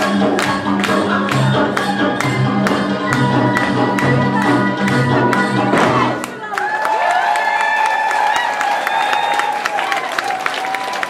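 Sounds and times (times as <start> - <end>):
audience applauding and cheering: 6.0 - 11.0.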